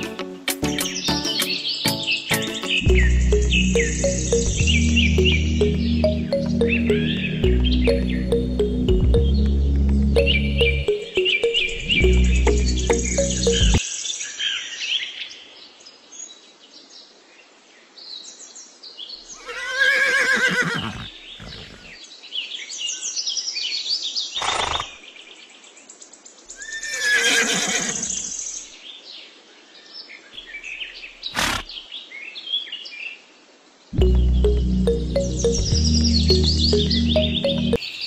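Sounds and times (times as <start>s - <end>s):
faint high bird chirps: 0.8s - 9.5s
horse whinnying: 19.4s - 22.0s, 26.6s - 28.3s, 31.3s - 31.7s.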